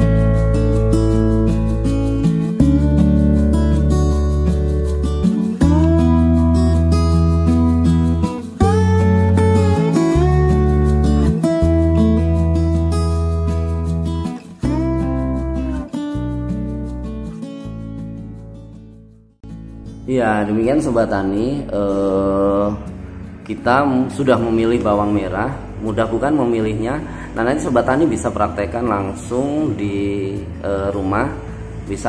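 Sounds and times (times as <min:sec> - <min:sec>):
strummed acoustic guitar music: 0:00.0 - 0:32.0.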